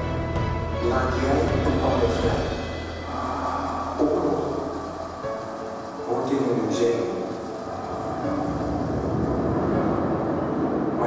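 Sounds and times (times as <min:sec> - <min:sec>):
faint music: 0:00.0 - 0:11.0
dense low rumble: 0:03.0 - 0:11.0.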